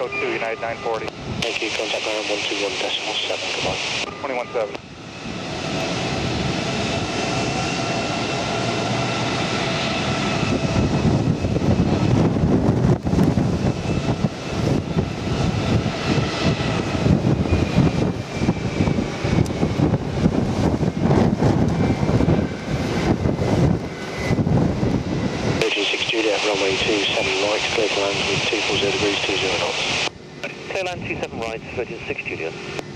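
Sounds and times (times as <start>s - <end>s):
jet engines whining: 0.0s - 32.9s
wind buffeting microphone: 0.6s - 1.7s, 4.8s - 25.7s.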